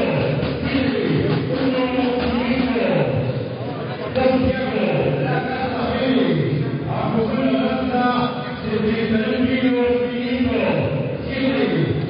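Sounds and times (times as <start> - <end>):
announcer over public address: 0.0 - 12.0.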